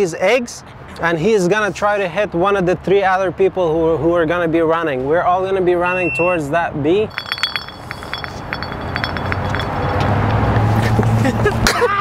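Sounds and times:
glass bottle spinning on asphalt: 7.0s - 10.2s.

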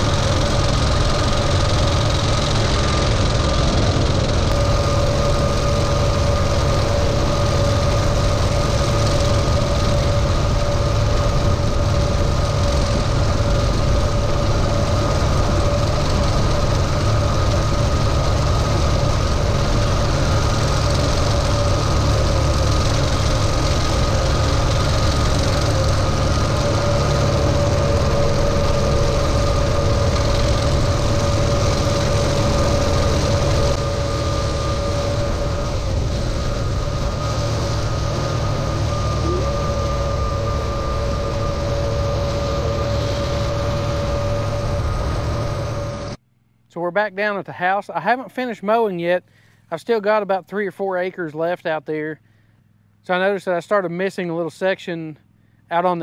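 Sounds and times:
mower whine: 0.0s - 56.0s
tractor diesel engine under load: 0.0s - 56.0s.

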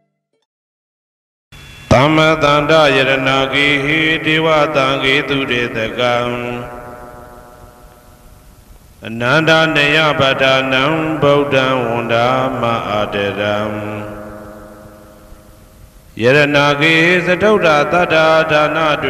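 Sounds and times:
low voice chanting: 1.8s - 8.0s, 9.0s - 15.4s, 16.2s - 19.0s.

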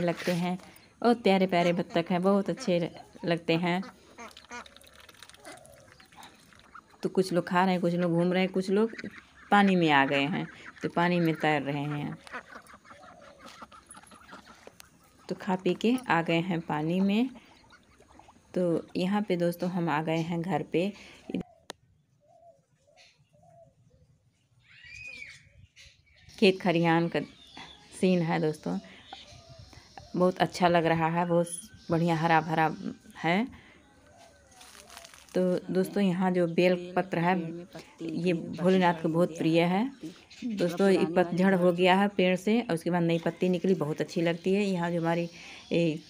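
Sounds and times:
ducks quacking faintly: 1.4s - 19.0s
faint bird calls: 8.7s - 15.4s, 21.0s - 26.4s, 27.1s - 30.6s, 31.7s - 36.8s.

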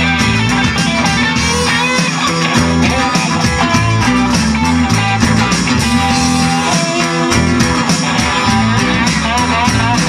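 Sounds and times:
bass notes: 0.0s - 10.0s
electric guitar: 0.0s - 10.0s
steady drum beat: 0.0s - 10.0s.

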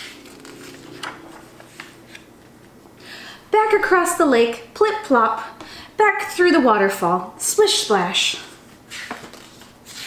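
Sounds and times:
paper pages rustling: 0.0s - 2.6s, 8.9s - 10.0s.

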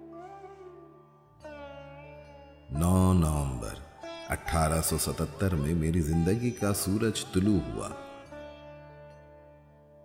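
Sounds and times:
soft instrumental tone: 0.0s - 9.8s.

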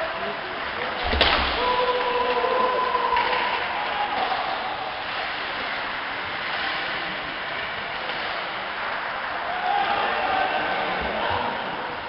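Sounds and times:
ice rink ambience: 0.0s - 12.0s.

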